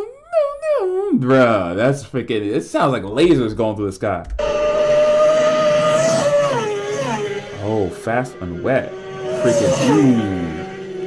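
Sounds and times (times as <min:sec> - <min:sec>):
motorcycle passing at high speed: 0:04.4 - 0:11.0.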